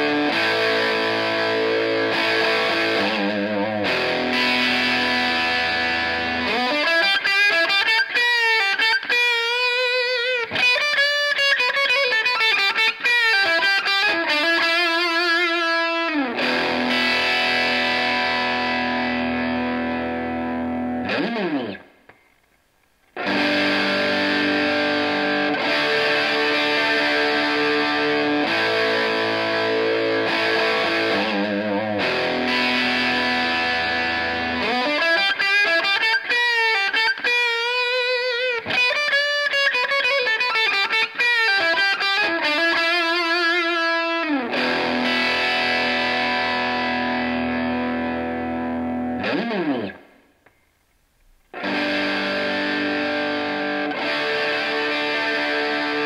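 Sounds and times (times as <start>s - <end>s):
overdriven electric guitar: 0.0s - 56.0s.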